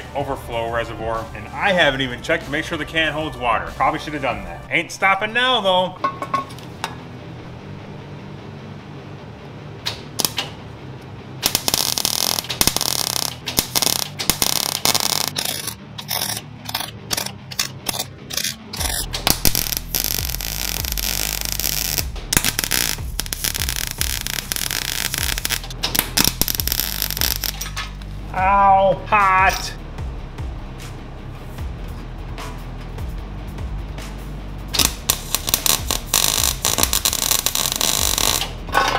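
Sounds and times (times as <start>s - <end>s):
welder arc crackling: 10.2s - 10.5s, 11.4s - 28.0s, 34.8s - 38.7s.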